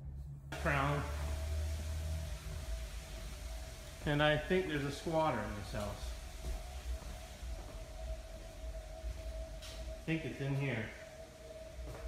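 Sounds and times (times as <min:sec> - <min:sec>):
low hum: 0:00.0 - 0:12.0
even hiss: 0:00.5 - 0:12.0.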